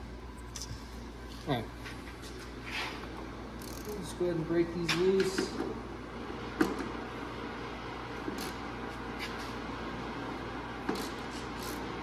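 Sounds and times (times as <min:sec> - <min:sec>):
steady shop hum: 0:00.0 - 0:12.0.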